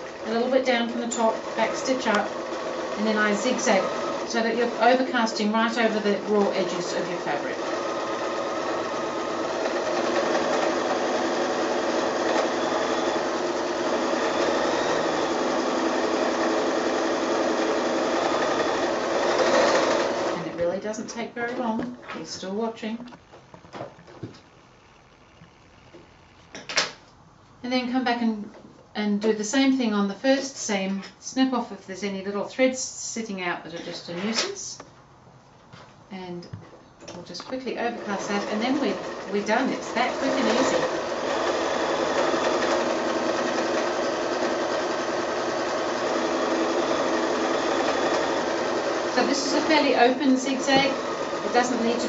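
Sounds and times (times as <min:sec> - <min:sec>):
sewing machine running: 0:00.0 - 0:20.6, 0:37.9 - 0:52.0.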